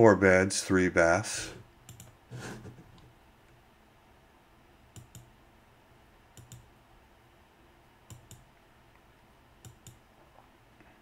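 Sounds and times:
faint room hum: 0:00.0 - 0:11.0
computer mouse clicking: 0:01.8 - 0:02.2, 0:04.9 - 0:05.3, 0:06.4 - 0:06.7, 0:08.1 - 0:08.5, 0:09.6 - 0:10.0.

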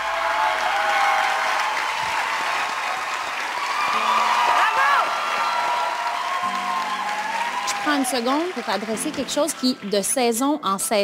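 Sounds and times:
people cheering: 0:00.0 - 0:10.4
audience applauding: 0:00.0 - 0:10.7.

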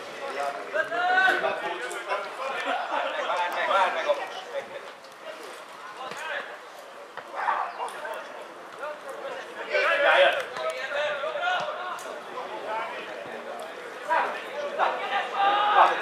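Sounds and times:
background chatter: 0:00.0 - 0:16.0
players shouting: 0:09.4 - 0:16.0.

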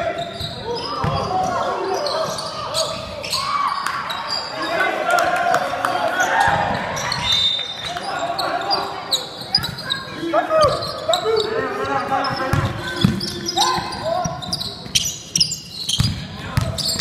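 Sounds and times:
sneakers squeaking: 0:00.0 - 0:05.0, 0:06.1 - 0:17.0
players calling out: 0:00.0 - 0:17.0
basketball bouncing: 0:12.5 - 0:14.0, 0:16.0 - 0:16.9.

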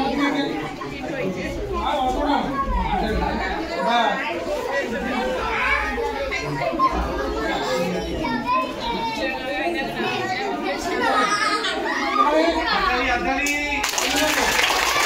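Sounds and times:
chatter of children and adults: 0:00.0 - 0:15.0.

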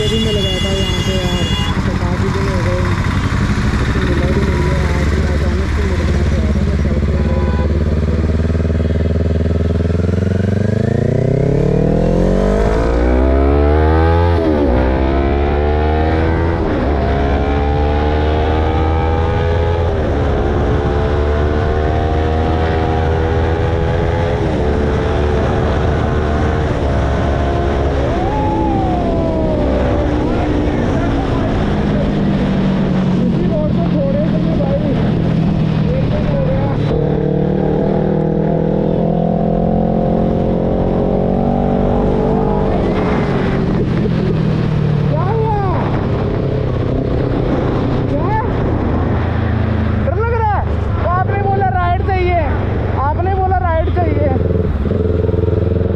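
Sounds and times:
motorcycle engine accelerating: 0:00.0 - 0:55.9.

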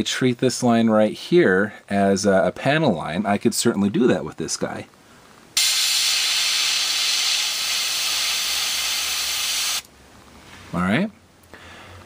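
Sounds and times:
airbrush spraying air hiss: 0:05.6 - 0:09.9.

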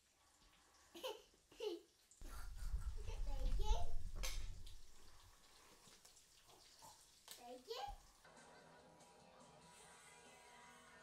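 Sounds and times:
soft background music: 0:08.2 - 0:11.0.

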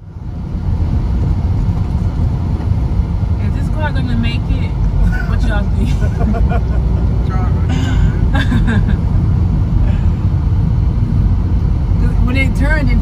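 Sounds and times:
car cabin road rumble: 0:00.0 - 0:13.0.

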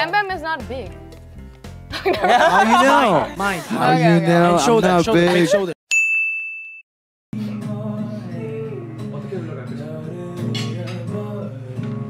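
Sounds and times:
bright bell-like ding: 0:05.9 - 0:06.8
acoustic guitar music: 0:07.4 - 0:12.0.

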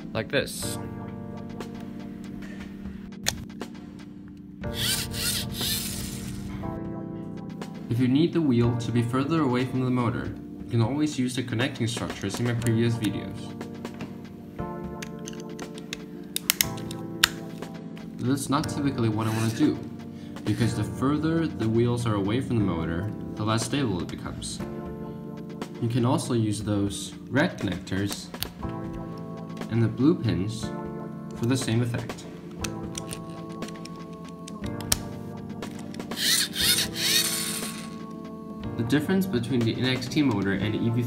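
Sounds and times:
background guitar music: 0:00.0 - 0:41.0
plastic parts rubbing and scraping: 0:04.8 - 0:06.5, 0:35.7 - 0:38.0
plastic parts clicking together: 0:15.0 - 0:17.5, 0:32.5 - 0:35.0.

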